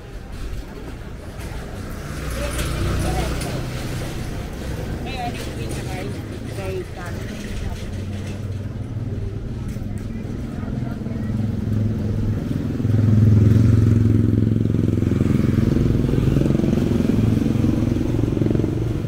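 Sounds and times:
motorcycle engine running: 8.9s - 19.0s.

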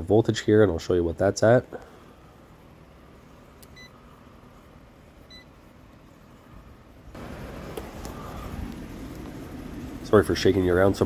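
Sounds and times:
short electronic beeps: 5.3s - 5.5s.

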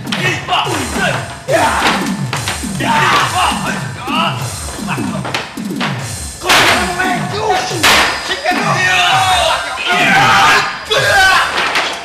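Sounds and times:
drum strokes falling in pitch: 0.0s - 11.7s
loud sharp crashes: 0.0s - 12.0s.

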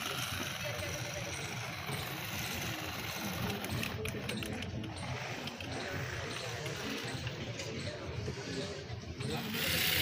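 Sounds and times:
crowd chatter: 0.0s - 10.0s
small electric motors running: 0.0s - 10.0s.

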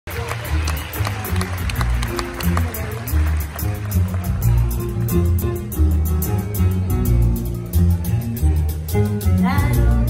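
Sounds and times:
bass line: 0.1s - 10.0s.

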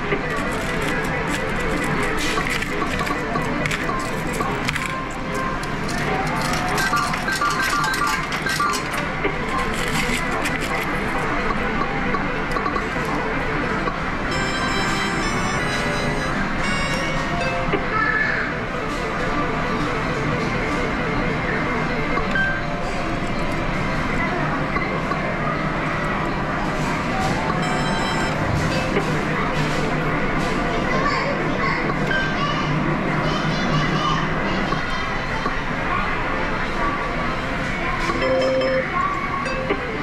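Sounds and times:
slot machine electronic tones: 0.0s - 17.9s, 18.5s - 24.2s, 26.8s - 30.7s, 38.0s - 40.0s
din of game machines: 0.0s - 40.0s
people and children talking: 14.3s - 19.3s, 23.8s - 40.0s.

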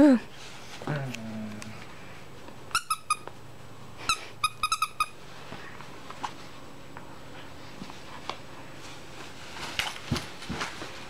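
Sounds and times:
dog toy squeaking: 2.7s - 3.3s, 4.1s - 5.2s.

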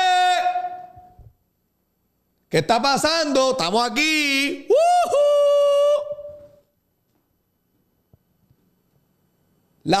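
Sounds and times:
man shouting high-pitched: 0.0s - 1.1s, 2.9s - 6.5s.

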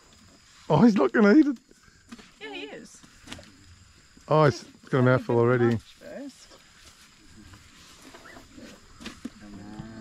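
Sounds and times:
elephant eating: 6.0s - 10.0s.

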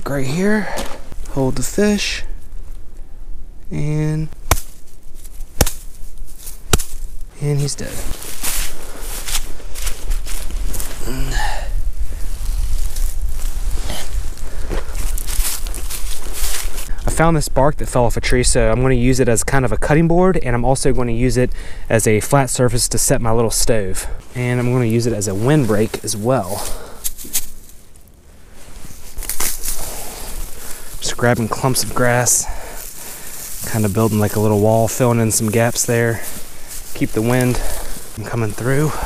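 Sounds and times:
footsteps through dry grass: 4.4s - 16.9s, 24.2s - 39.0s
wind rumble on microphone: 9.6s - 16.9s
short grunt: 11.0s - 11.7s.

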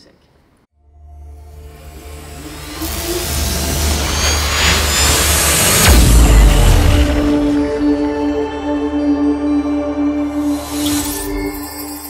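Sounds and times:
low drone: 0.8s - 12.0s
rushing whoosh with sliding tones: 1.8s - 8.0s
deep impact: 4.0s - 8.7s.

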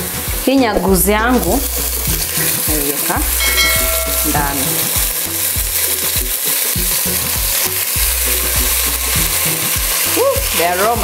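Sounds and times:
food sizzling in hot oil: 0.0s - 11.0s
low steady tones: 3.3s - 5.4s.

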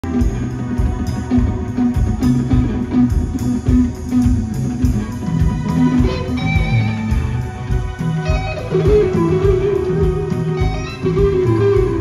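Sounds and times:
bass guitar: 0.0s - 12.0s
drum beat with cymbals: 0.0s - 12.0s
electric guitar: 0.0s - 12.0s.

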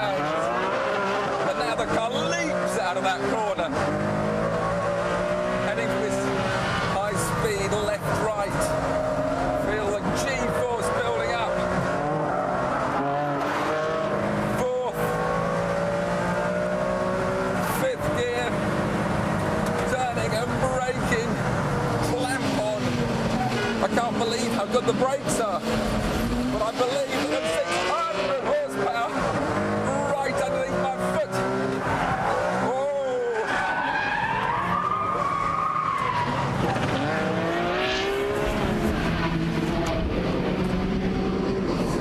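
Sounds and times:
sports car engine at hard throttle: 0.0s - 33.5s, 34.1s - 42.0s.

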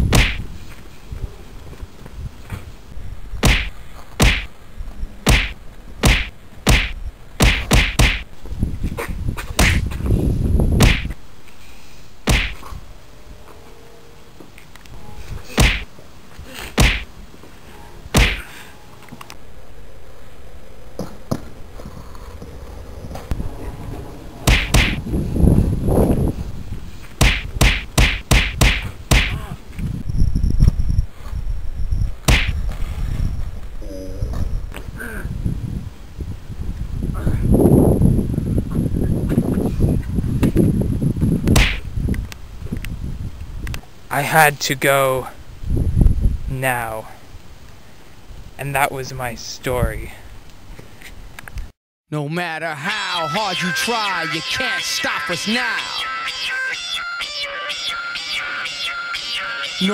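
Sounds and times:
punches striking: 0.1s - 0.4s, 3.4s - 4.5s, 5.3s - 8.3s, 9.6s - 9.8s, 10.8s - 11.2s, 12.3s - 12.6s, 15.5s - 15.9s, 16.7s - 17.1s, 18.2s - 18.5s, 24.5s - 25.0s, 27.2s - 29.5s, 32.3s - 32.6s, 41.6s - 41.8s.

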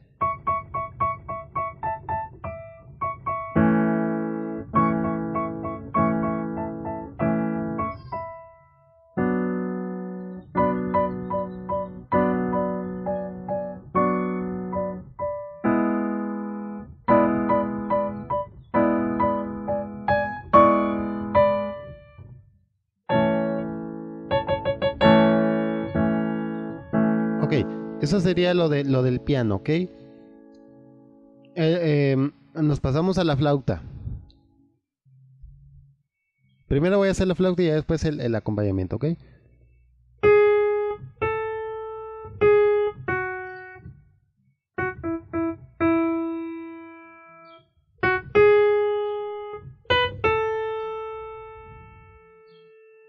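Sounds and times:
electronic keyboard piano chords: 0.0s - 22.4s, 23.1s - 32.2s, 40.2s - 44.0s, 44.8s - 53.0s.

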